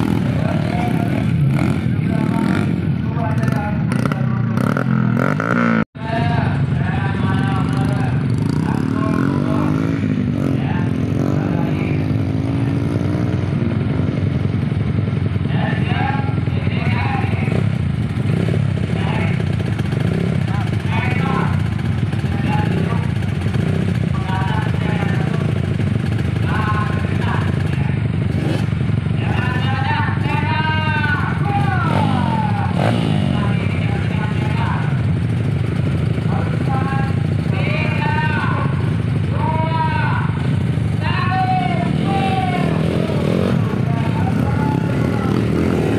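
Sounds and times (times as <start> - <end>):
engine revving: 0.0 - 5.9, 7.0 - 14.3, 16.8 - 35.0, 35.9 - 45.9
dirt bike engines idling: 0.0 - 45.9
man talking: 6.0 - 12.8, 20.4 - 23.3, 24.0 - 25.6, 26.4 - 28.1, 29.2 - 35.0, 36.2 - 45.9.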